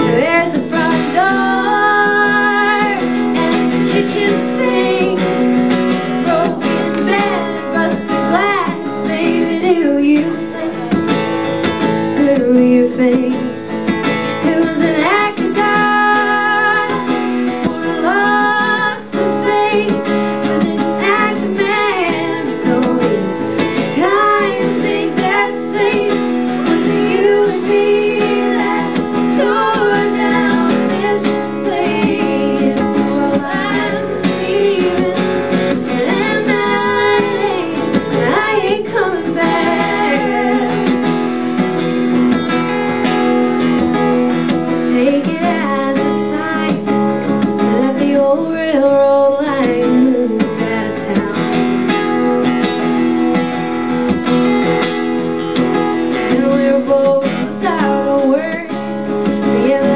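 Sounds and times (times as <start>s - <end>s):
woman singing: 0.0s - 11.1s, 12.0s - 13.6s, 14.2s - 41.3s, 44.7s - 52.2s, 56.1s - 59.9s
acoustic guitar strummed: 0.0s - 59.9s.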